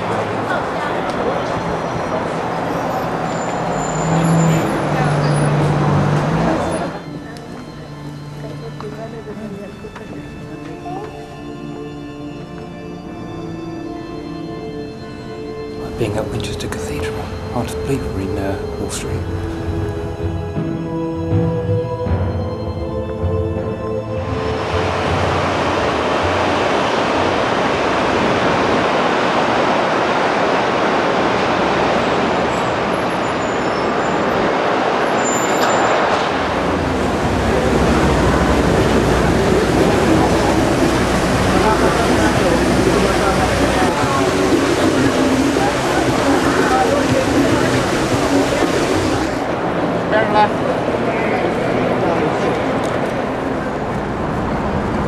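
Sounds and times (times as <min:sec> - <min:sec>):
crowd chatter: 0:00.0 - 0:11.8, 0:36.6 - 0:55.0
sombre music: 0:00.0 - 0:34.9, 0:35.9 - 0:55.0
steady traffic: 0:00.0 - 0:55.0.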